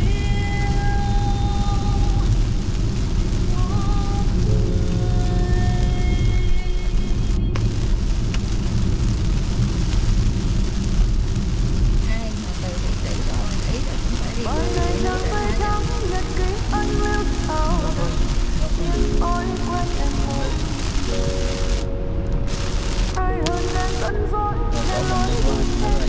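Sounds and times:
heavy rain on windshield: 0:00.0 - 0:26.0
tyres hissing on wet road: 0:00.0 - 0:26.0
music melody: 0:14.4 - 0:26.0.

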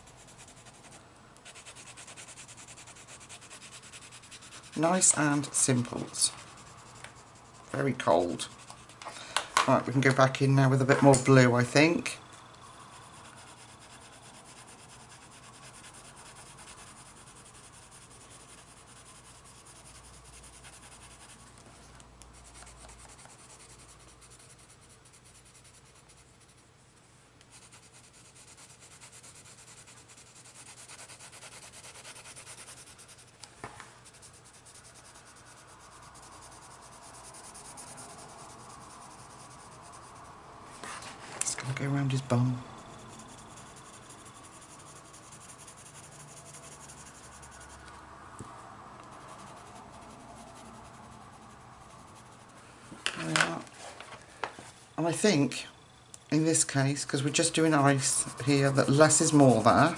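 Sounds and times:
pencil rubbing on paper: 0:00.0 - 0:09.0, 0:11.0 - 0:21.6, 0:22.3 - 0:33.4, 0:34.0 - 0:47.9, 0:49.0 - 0:52.6, 0:57.4 - 0:59.9.

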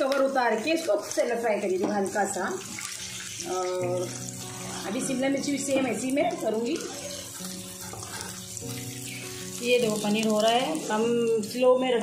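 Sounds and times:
stirring in a pan: 0:00.0 - 0:11.4
background music sustained notes: 0:00.0 - 0:12.0
onions sizzling in oil: 0:00.0 - 0:12.0.

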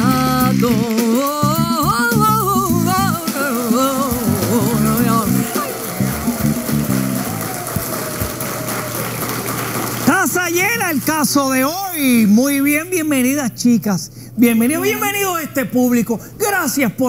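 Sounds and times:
sung jingle over bass line: 0:04.3 - 0:07.3.

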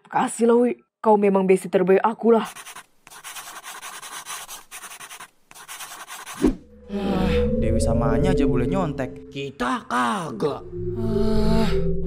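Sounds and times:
pencil scratching on paper: 0:02.4 - 0:06.6.

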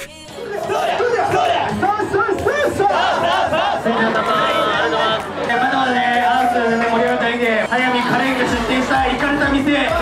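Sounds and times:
men chanting in unison: 0:00.3 - 0:05.6.

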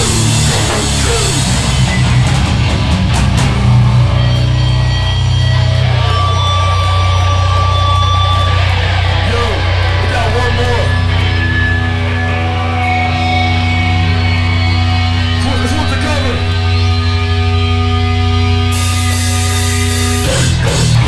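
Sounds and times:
drums and cymbals crashing: 0:00.0 - 0:09.2, 0:18.7 - 0:21.0
bass guitar: 0:00.0 - 0:21.0
distorted electric guitars: 0:00.0 - 0:21.0.

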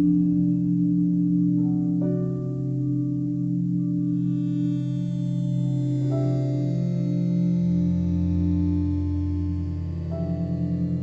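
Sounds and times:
ambient drone music: 0:00.0 - 0:11.0.

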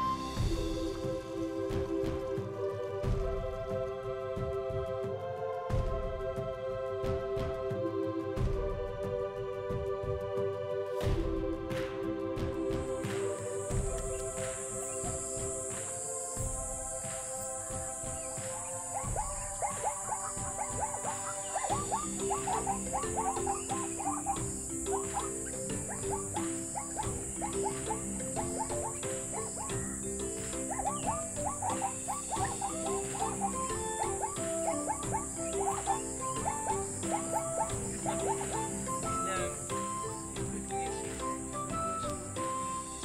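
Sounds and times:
steady high hiss: 0:00.0 - 0:08.4, 0:09.0 - 0:43.0
background music: 0:00.0 - 0:43.0.

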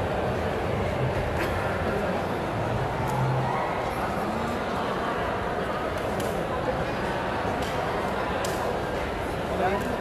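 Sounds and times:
sports hall din: 0:00.0 - 0:10.0.

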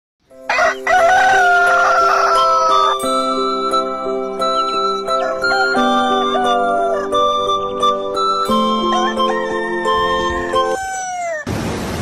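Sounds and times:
music with sliding notes: 0:00.3 - 0:10.9.

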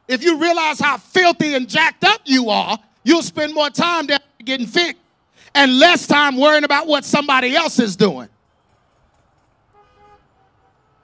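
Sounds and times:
faint car horns honking: 0:09.7 - 0:11.0.

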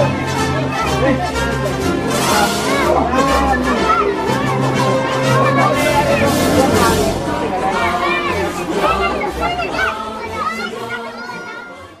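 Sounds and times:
children shouting: 0:02.4 - 0:12.0.

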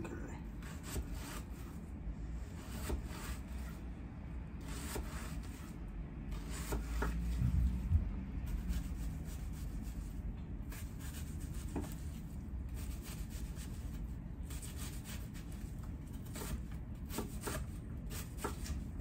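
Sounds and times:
knife slicing onion on wooden board: 0:00.6 - 0:01.8, 0:02.6 - 0:03.7, 0:04.6 - 0:05.7, 0:06.3 - 0:07.6, 0:08.5 - 0:19.0.

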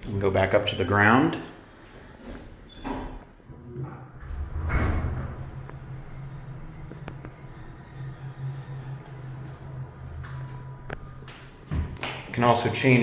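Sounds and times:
elevator hum: 0:03.4 - 0:13.0
faint high whine: 0:03.4 - 0:13.0.

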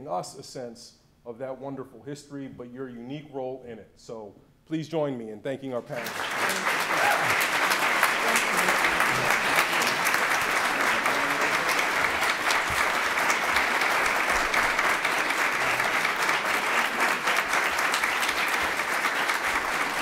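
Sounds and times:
audience clapping: 0:05.8 - 0:20.0.

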